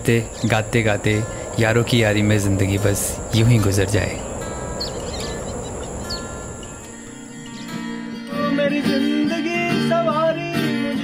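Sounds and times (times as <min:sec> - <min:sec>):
bird chirps: 0:00.0 - 0:02.3, 0:03.1 - 0:07.9
high insect trill: 0:00.0 - 0:09.6.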